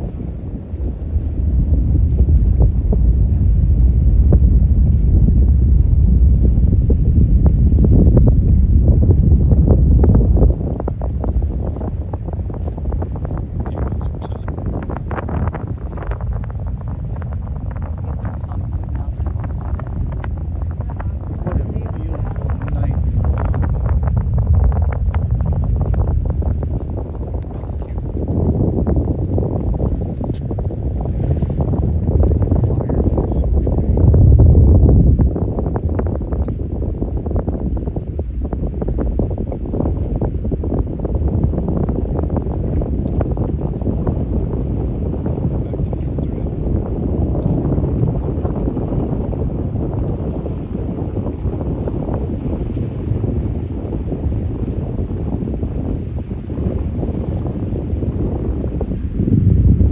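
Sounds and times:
distant rocket launch rumble: 0.0 - 59.9.

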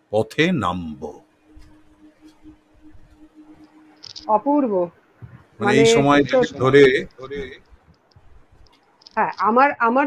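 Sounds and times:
person making brief voiced sound: 5.6 - 6.6.

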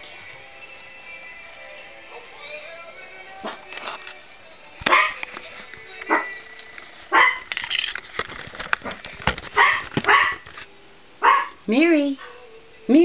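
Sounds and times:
small dog barking: 4.9 - 5.2, 7.1 - 7.5, 9.6 - 10.4, 11.2 - 11.6.

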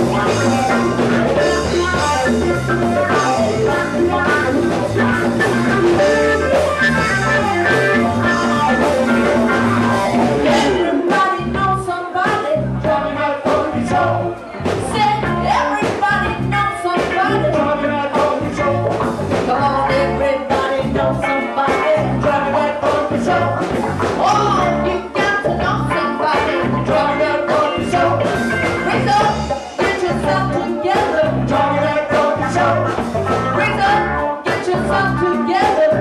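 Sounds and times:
bass: 0.0 - 36.0
funk band playing live: 0.0 - 36.0.

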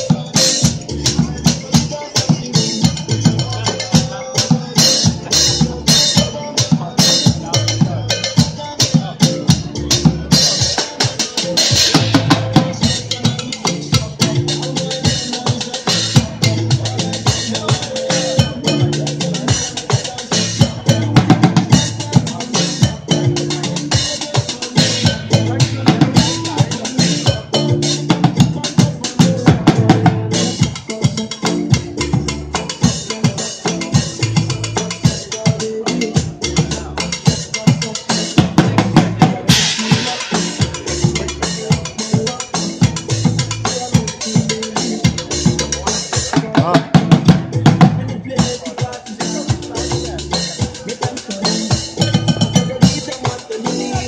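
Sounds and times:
bucket drumming: 0.0 - 54.0.

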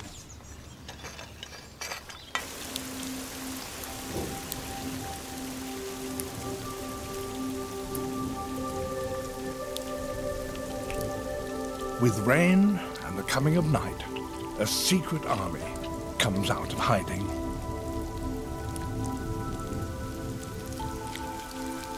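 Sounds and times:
steady rain falling: 0.0 - 21.9
single raindrops hitting: 2.3 - 21.9
soft held music notes: 2.4 - 21.9.

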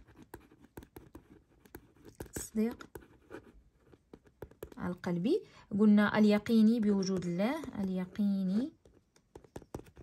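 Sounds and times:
pen writing on paper: 0.0 - 4.9, 8.8 - 10.0.

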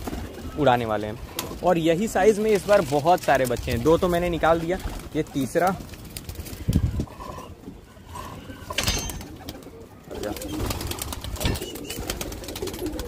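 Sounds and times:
pigeons cooing: 6.2 - 13.0.

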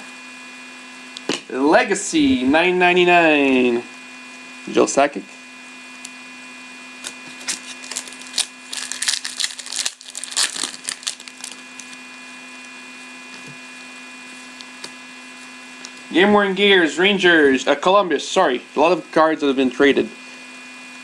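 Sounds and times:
steady electrical hum: 0.0 - 21.0
cards and foil wrappers crinkling: 7.0 - 12.1.

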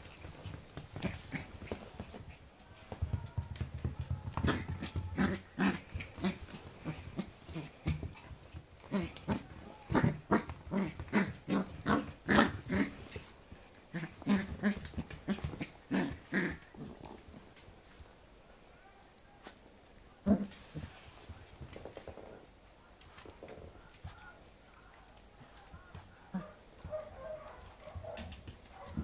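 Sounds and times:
puppy growling in play: 0.8 - 2.2, 4.4 - 17.4, 20.2 - 20.9.

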